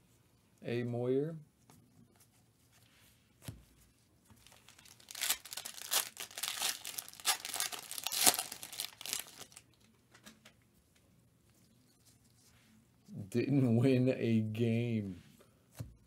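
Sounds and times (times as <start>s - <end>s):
foil pack ripping: 4.4s - 9.6s
foil wrapper crinkling: 4.4s - 9.8s.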